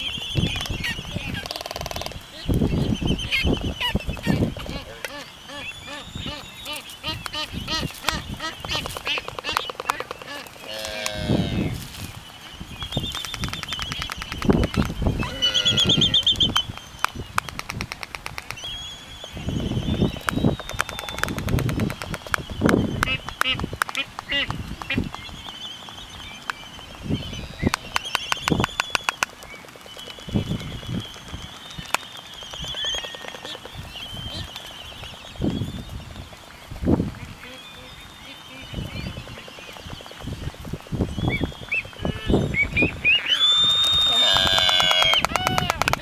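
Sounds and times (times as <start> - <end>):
albatross bill clacking: 0.0 - 11.6, 12.8 - 18.7, 20.1 - 35.2, 44.1 - 46.0
albatross whistling braying calls: 15.2 - 16.5, 41.3 - 46.0.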